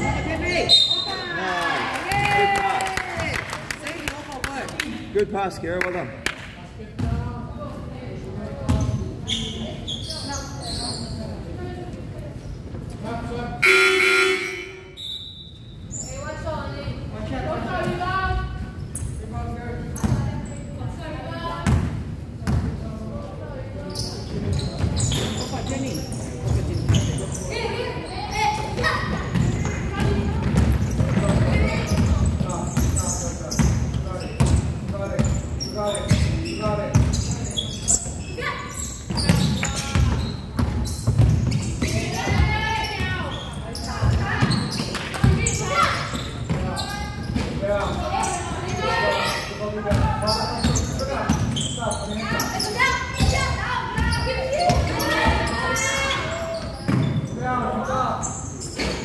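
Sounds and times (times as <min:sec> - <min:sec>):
basketball bouncing on wood floor: 0:29.3 - 0:33.0, 0:39.2 - 0:42.6.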